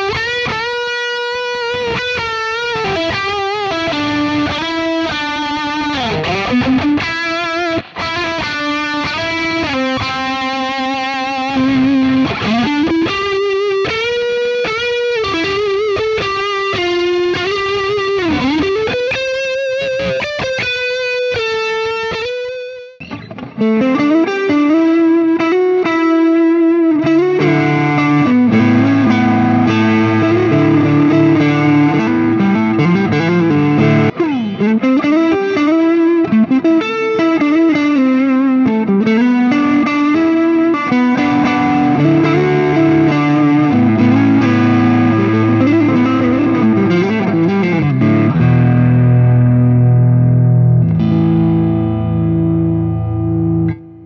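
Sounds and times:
overdriven electric guitar lead: 0.0 - 54.0.

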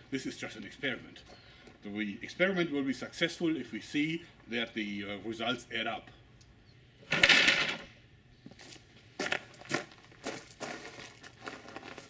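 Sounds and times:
footsteps crunching on gravel: 8.4 - 12.0.

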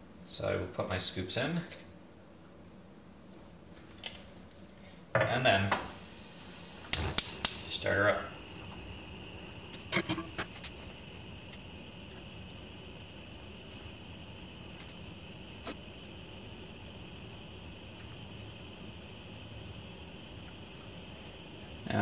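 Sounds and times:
gas burner hissing: 5.0 - 22.0.

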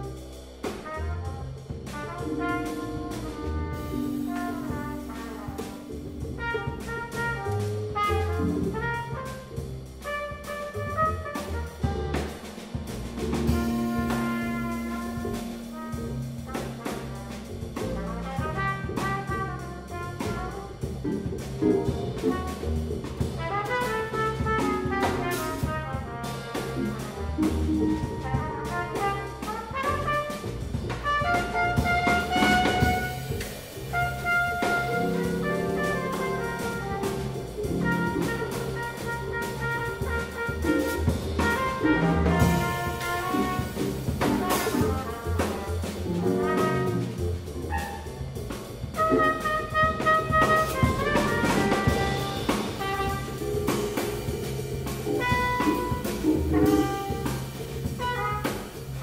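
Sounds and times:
jazz combo playing: 0.0 - 59.0
trumpet leading: 0.0 - 59.0.

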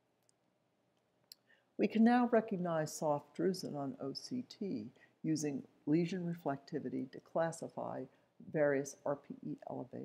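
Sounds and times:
woman narrating: 1.8 - 10.0.

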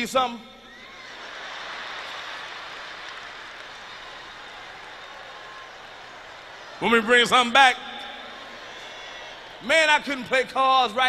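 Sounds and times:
large audience applauding: 0.8 - 7.4.

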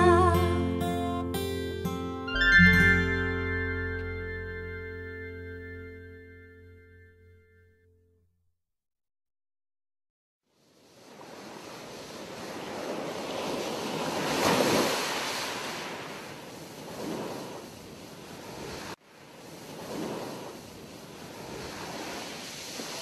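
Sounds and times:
ocean waves breaking: 10.5 - 23.0.

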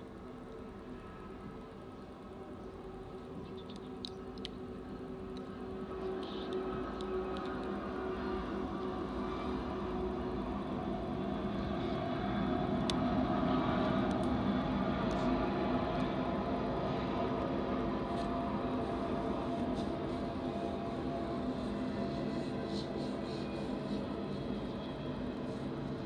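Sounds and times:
diesel locomotive engine drone: 0.0 - 26.0
freight train rumbling: 5.0 - 26.0.

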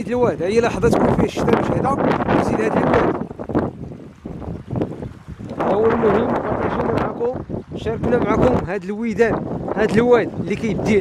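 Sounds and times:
floodwater rushing over rocks: 0.0 - 11.0
wind buffeting microphone: 0.0 - 11.0.

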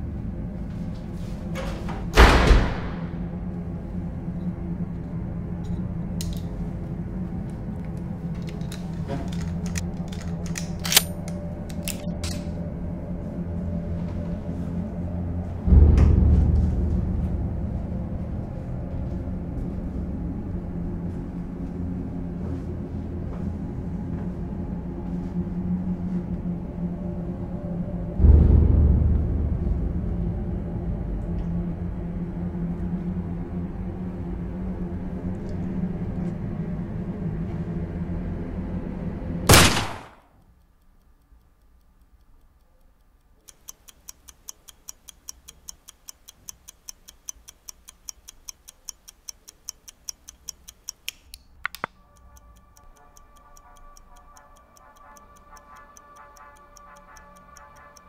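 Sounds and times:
faint hum: 0.0 - 44.2
low droning film score: 0.0 - 58.0
heavy boom: 2.1 - 3.5, 15.5 - 19.4, 28.2 - 32.0
sharp loud bang: 2.2 - 3.2
click: 4.4 - 6.5, 7.4 - 12.6, 40.4 - 58.0
clock ticking: 40.4 - 58.0.

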